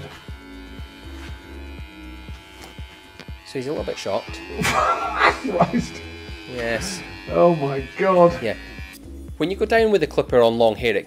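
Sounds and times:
electric hair clipper buzzing: 0.0 - 9.3.

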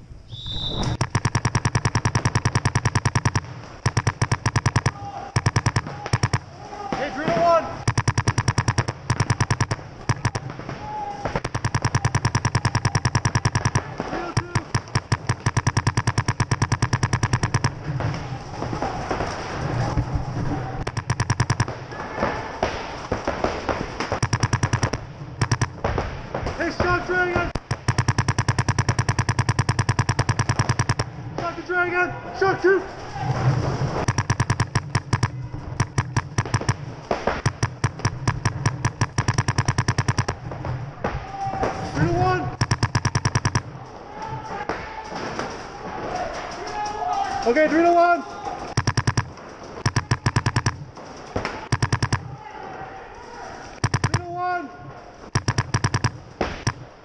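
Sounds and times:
paintball marker rapid firing: 0.8 - 19.2, 20.8 - 31.2, 34.0 - 40.7, 41.6 - 43.8, 48.7 - 52.4, 53.7 - 54.5, 55.2 - 57.0.

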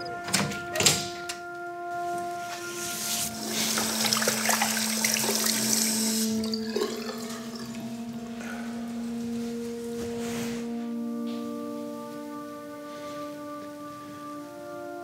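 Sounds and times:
tap water running into sink: 3.3 - 8.0
water splashing on face: 3.3 - 8.0.

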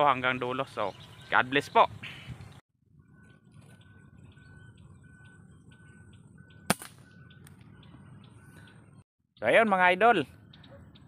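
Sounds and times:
faint birds chirping: 0.0 - 11.0
rifle shot: 6.7 - 7.0.

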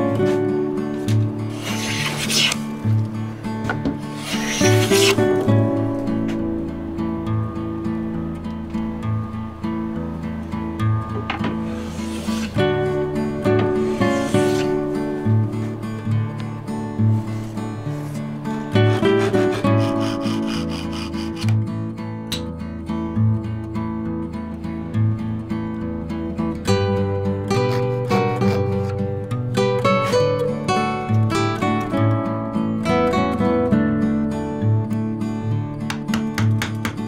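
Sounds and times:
soft acoustic guitar music: 0.0 - 37.0
hand plane shaving wood: 1.5 - 2.6, 4.1 - 5.2, 13.7 - 14.8, 18.8 - 21.6.

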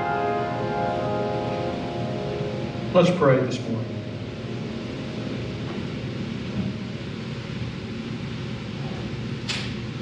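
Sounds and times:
sustained piano chord: 0.0 - 8.2.

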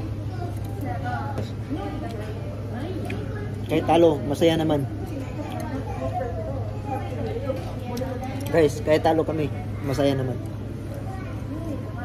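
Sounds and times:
indistinct talk: 0.0 - 12.0.

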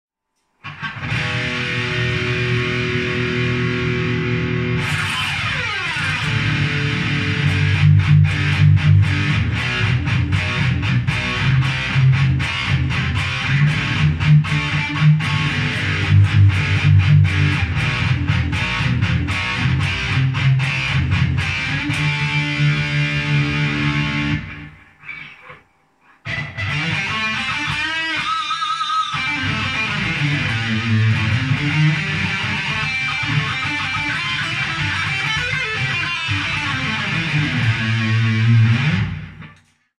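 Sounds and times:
electric guitar quickly picked: 0.6 - 25.6, 26.3 - 39.5.

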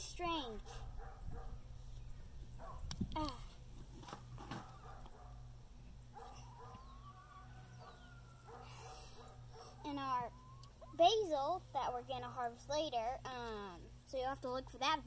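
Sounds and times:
chickens clucking faintly: 4.4 - 11.0.

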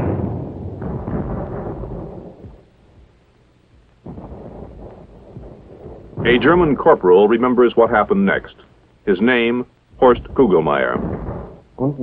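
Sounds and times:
rumble of gunfire: 0.0 - 11.8
shell explosions: 0.0 - 11.8.

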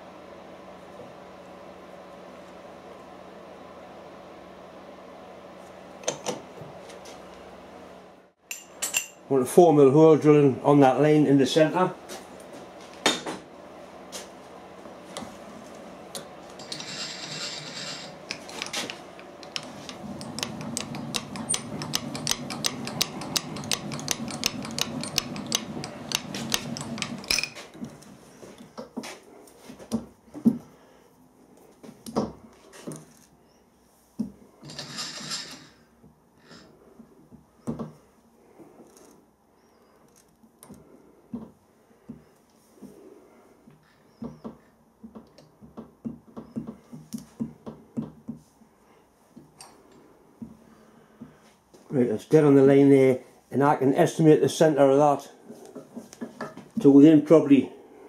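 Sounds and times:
milling machine humming: 12.0 - 28.7
rapid mechanical ticking: 19.3 - 27.3.

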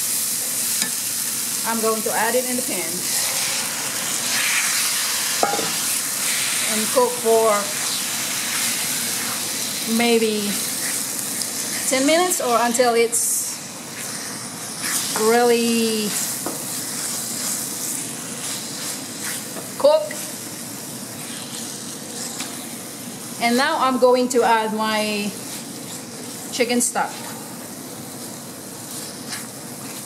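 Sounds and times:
food sizzling in a skillet: 0.0 - 30.0
spatula stirring: 3.1 - 12.2, 13.9 - 20.3.

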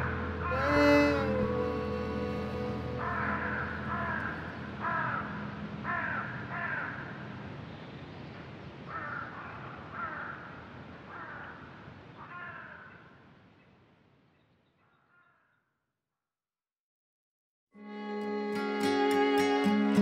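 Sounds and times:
sustained music tones: 0.0 - 6.5, 17.8 - 20.0
short bird calls: 14.4 - 15.8.

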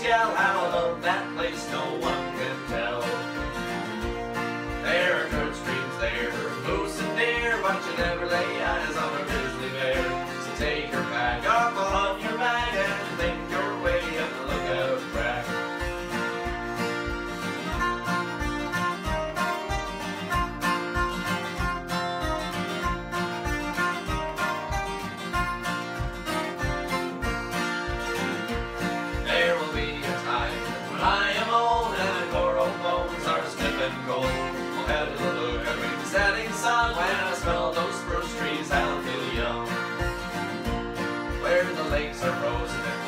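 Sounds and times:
acoustic guitars strummed: 0.0 - 43.0
steady low beat: 2.0 - 43.0.

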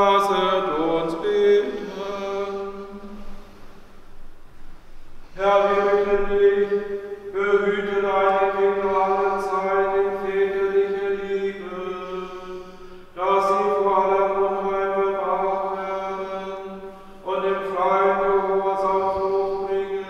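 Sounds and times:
voices chanting held notes: 0.0 - 3.7, 5.2 - 20.0
steady low drone note: 0.0 - 20.0.

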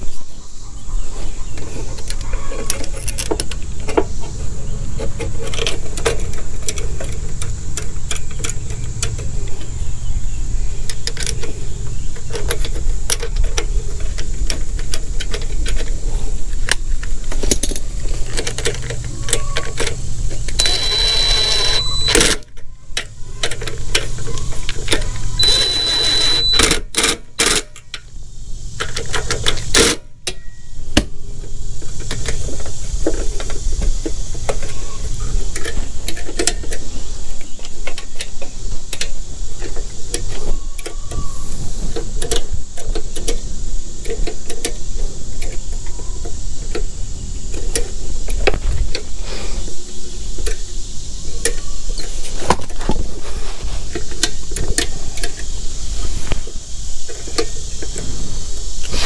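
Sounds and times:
metal parts and tools clinking: 1.6 - 4.4, 5.0 - 9.7, 10.9 - 28.1
cordless drill whining: 20.6 - 22.4, 25.4 - 26.8.

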